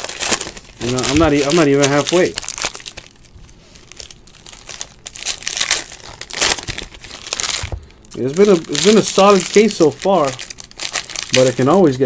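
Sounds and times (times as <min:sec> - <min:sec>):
foil wrappers crinkling: 0:00.0 - 0:12.0.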